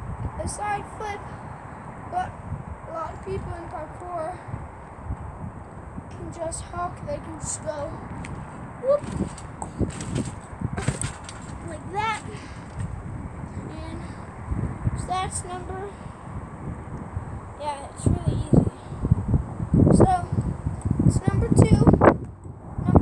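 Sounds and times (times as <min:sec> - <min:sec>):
trampoline thuds: 0:07.4 - 0:13.0.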